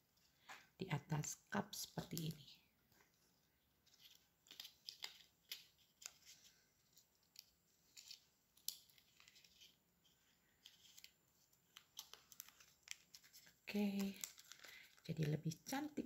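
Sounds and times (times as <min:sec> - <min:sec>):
paper liner crinkling: 0:03.8 - 0:16.0.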